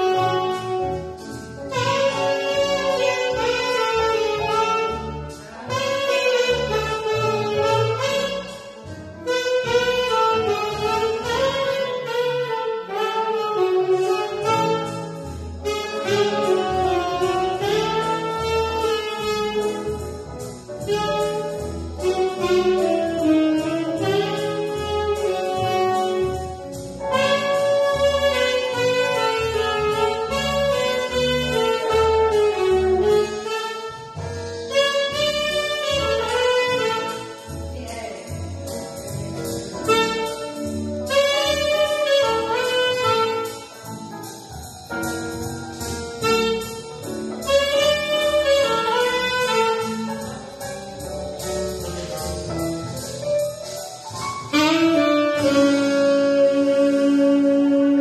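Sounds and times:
repeating bass line: 0.0 - 58.0
tenor saxophone melody: 0.0 - 58.0.

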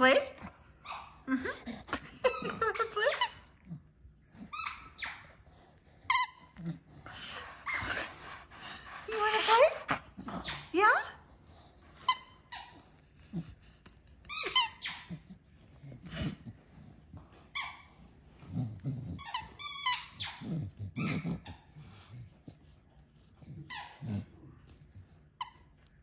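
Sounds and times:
dog squeaking and whining: 0.8 - 1.3, 2.2 - 3.5, 4.4 - 5.5, 7.2 - 11.0, 12.0 - 12.9, 14.2 - 16.0, 17.5 - 18.0, 19.1 - 21.7, 23.5 - 24.2.

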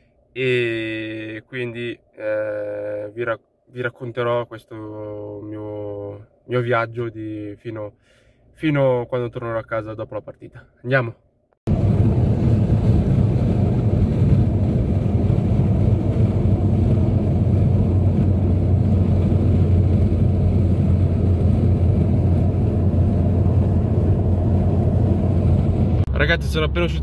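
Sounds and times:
car engine and road rumble: 11.7 - 27.0.

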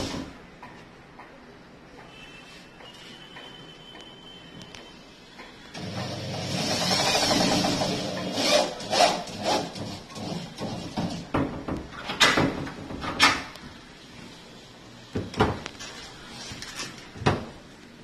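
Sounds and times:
power drill driving a screw: 5.8 - 10.4.

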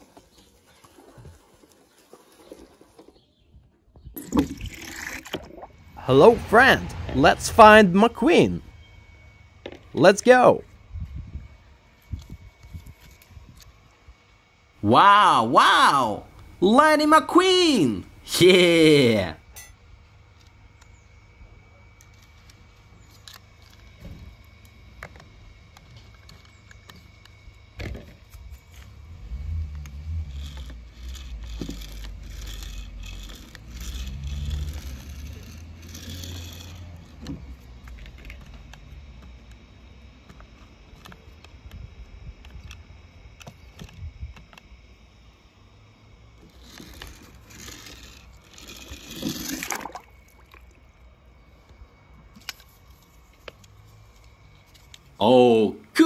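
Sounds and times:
toy truck wheels clicking and scraping: 0.0 - 3.4, 28.1 - 41.6, 46.3 - 50.2.

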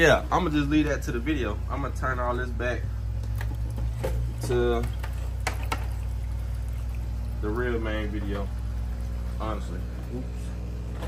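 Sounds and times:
low filter hum: 0.0 - 11.0
water pouring and splashing: 3.2 - 9.2.

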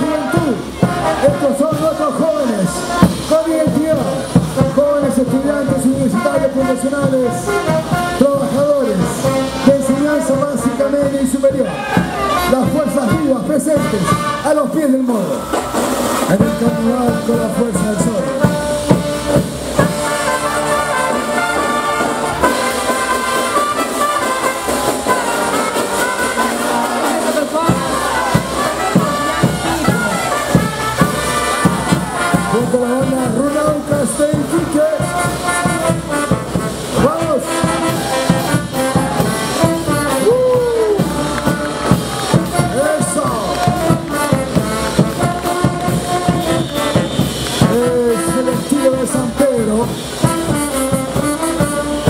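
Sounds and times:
brass band playing dance music: 0.0 - 52.0
steady drum beat: 0.0 - 52.0.

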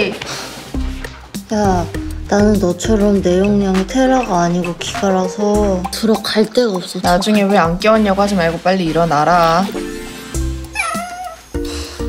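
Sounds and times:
light background music: 0.0 - 12.0
cartoon cat meow: 10.7 - 11.5.

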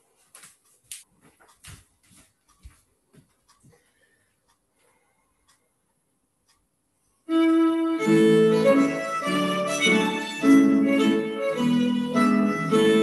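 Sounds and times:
soft footsteps on tiled floor: 0.0 - 5.0.

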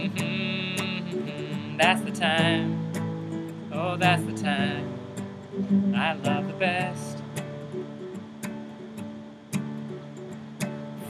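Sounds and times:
nylon-string guitar strumming: 0.0 - 11.0.

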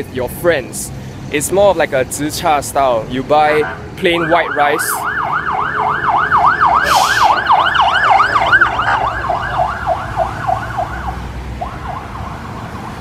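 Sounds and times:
low rumble of street traffic: 0.0 - 13.0
siren yelping: 3.4 - 13.0.

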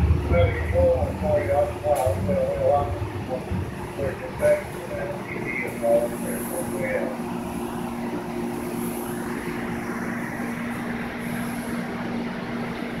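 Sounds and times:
light rail car hum: 0.0 - 13.0
rail wheels rolling: 0.0 - 13.0.

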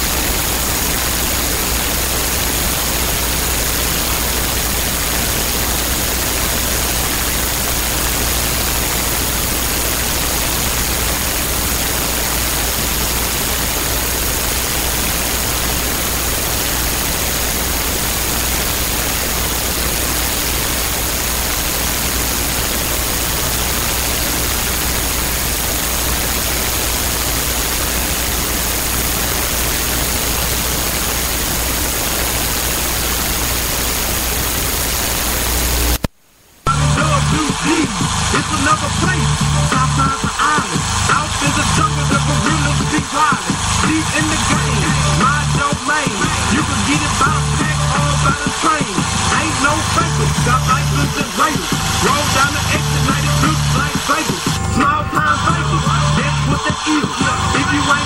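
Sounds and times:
faint high whine: 0.0 - 58.0
static-like hiss: 0.0 - 58.0.

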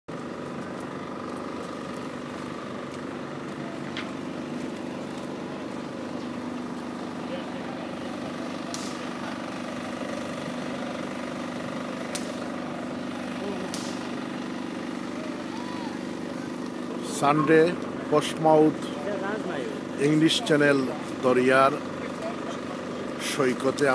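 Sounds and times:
steady droning hum: 0.1 - 23.9.

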